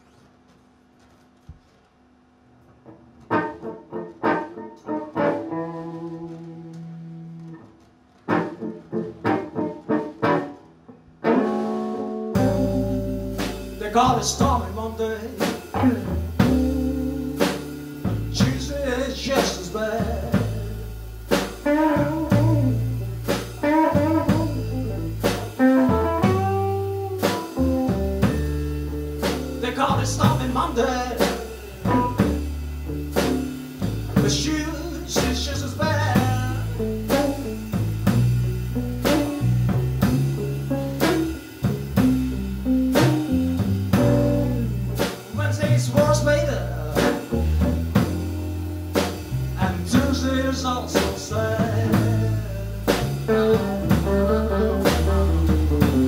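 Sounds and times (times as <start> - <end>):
bass guitar: 2.8 - 56.0
electric guitar: 2.8 - 56.0
drum kit: 3.2 - 56.0
man singing: 13.8 - 16.0, 18.3 - 20.9, 29.6 - 32.2, 34.2 - 36.8, 45.3 - 47.6, 49.6 - 54.5.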